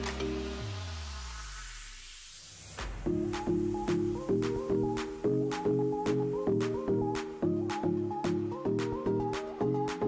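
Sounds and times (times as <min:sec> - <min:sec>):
background music with beat: 0:00.0 - 0:10.0.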